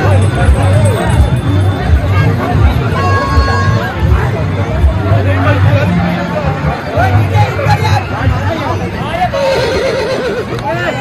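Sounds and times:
crowd chatter: 0.0 - 11.0
horse whinnying: 9.4 - 10.6.

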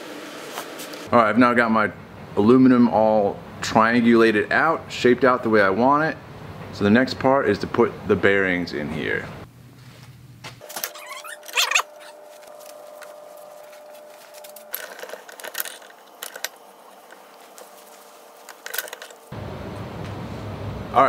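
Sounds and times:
faint steady hum: 1.1 - 21.0.

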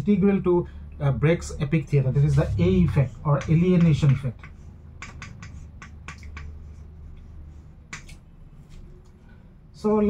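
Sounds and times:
chalk tapping on a chalkboard: 3.3 - 8.2.

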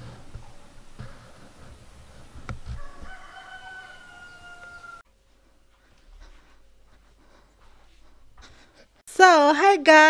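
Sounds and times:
rooster crowing: 2.7 - 5.0.

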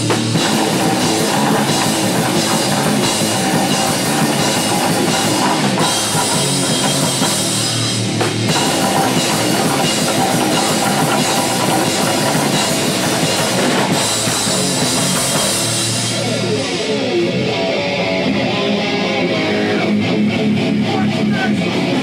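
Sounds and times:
distorted electric guitar: 0.0 - 22.0
drum kit: 0.0 - 22.0
electric bass: 0.0 - 22.0.

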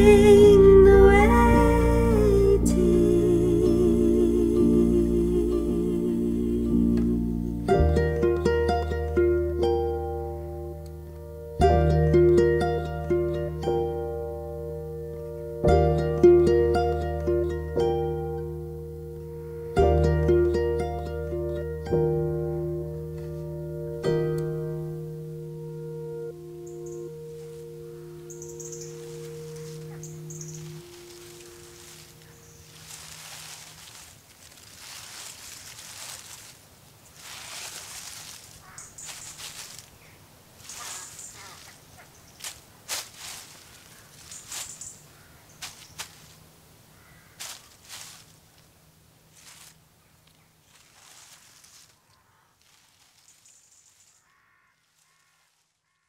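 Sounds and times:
soft hiss: 0.0 - 55.8
piano chord ringing out: 4.6 - 33.6
faint high chirps: 26.6 - 33.6
faint bird calls: 28.3 - 34.1, 37.1 - 48.3, 50.0 - 56.0.

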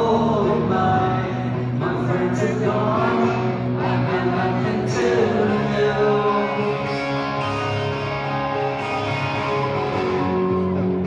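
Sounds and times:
live rock band playing: 0.0 - 11.0
strummed electric guitar: 0.0 - 11.0.

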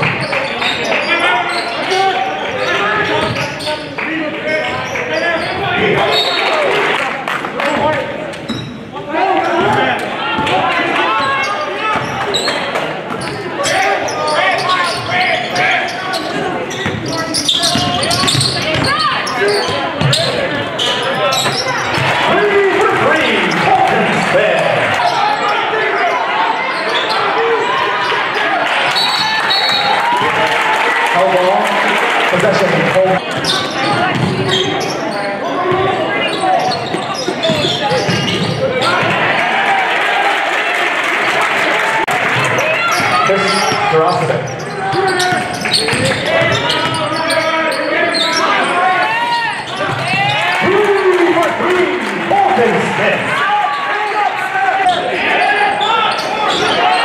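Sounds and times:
indistinct voices: 0.0 - 30.4.

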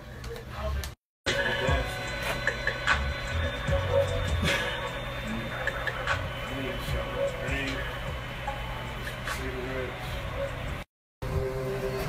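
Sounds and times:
hip-hop music with deep bass: 0.5 - 12.0.

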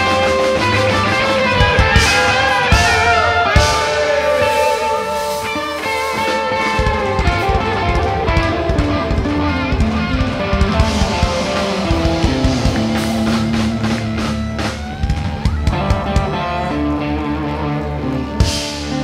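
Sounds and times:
drum hits: 0.0 - 16.4
live rock band playing: 0.0 - 19.0.

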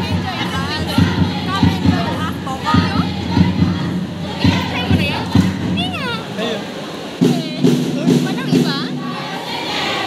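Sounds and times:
group of voices chanting: 0.0 - 6.3, 8.4 - 10.0.

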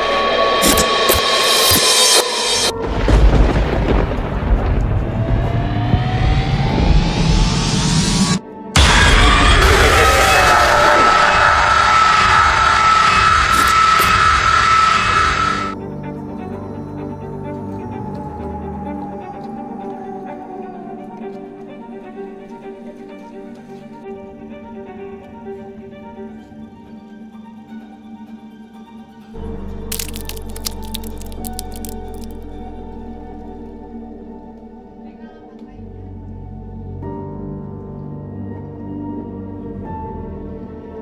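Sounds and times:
irregular sharp crackles: 29.9 - 32.5.

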